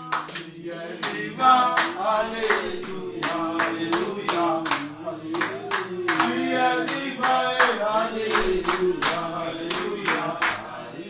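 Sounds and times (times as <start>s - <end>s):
hands clapping in rhythm: 0.0s - 10.8s
chorus singing: 0.0s - 11.0s.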